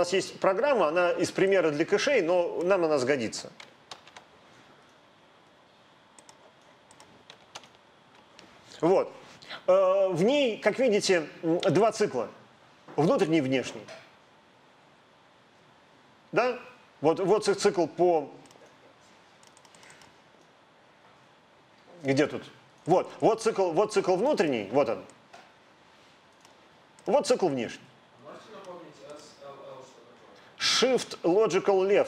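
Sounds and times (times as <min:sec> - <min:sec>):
room hiss: 0:00.0 - 0:32.0
computer keyboard clicks: 0:03.6 - 0:04.3, 0:06.2 - 0:08.3, 0:19.4 - 0:20.1.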